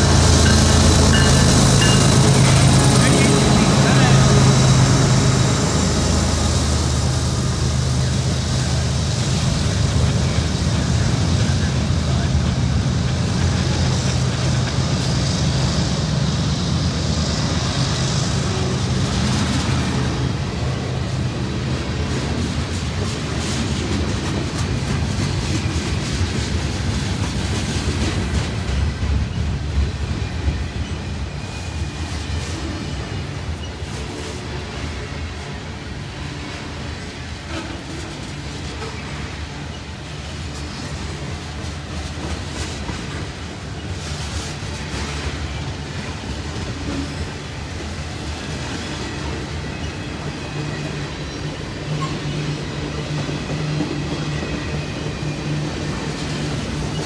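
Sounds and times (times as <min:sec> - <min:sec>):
diesel locomotive engine hum: 0:00.0 - 0:57.0
train cars rumbling over rails: 0:00.0 - 0:57.0.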